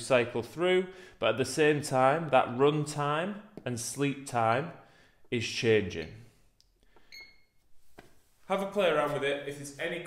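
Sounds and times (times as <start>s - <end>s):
short electronic beep: 7.1s - 7.5s.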